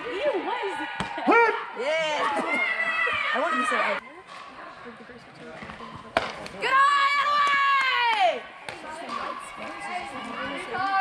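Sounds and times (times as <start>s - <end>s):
bat hitting ball: 6.1s - 6.6s.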